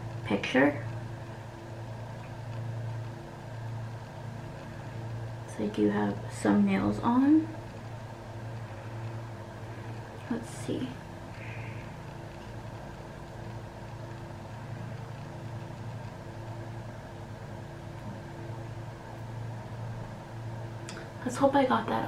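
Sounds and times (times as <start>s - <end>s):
low background hum: 0.0s - 22.0s.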